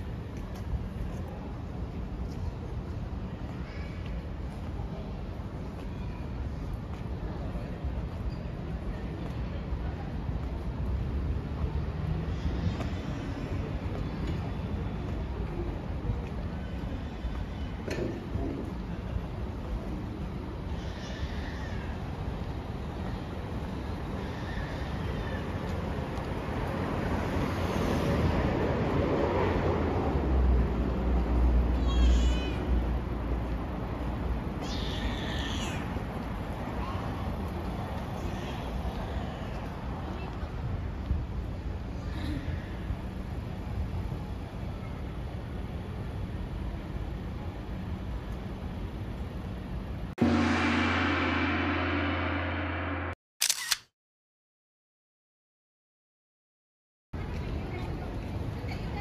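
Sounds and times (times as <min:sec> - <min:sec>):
traffic rumble: 0:00.0 - 0:53.2
sustained ringing tone: 0:50.2 - 0:53.2
sharp clicks: 0:53.4 - 0:53.9.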